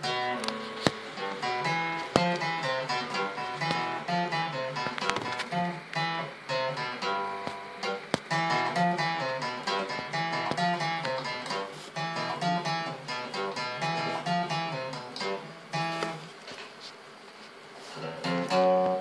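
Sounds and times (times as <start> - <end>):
acoustic guitar picking: 0.0 - 16.8, 17.8 - 19.0.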